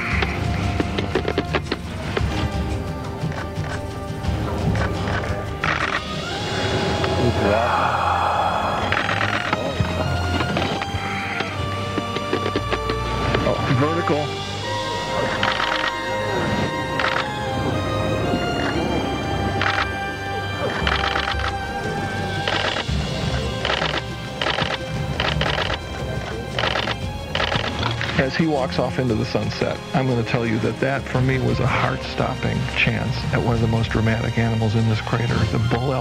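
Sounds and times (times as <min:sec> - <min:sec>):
background music with sustained notes: 0:00.0 - 0:36.0.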